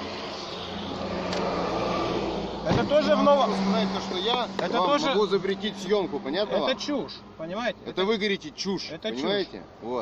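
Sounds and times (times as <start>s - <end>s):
traffic passing on wet road: 0.0s - 10.0s.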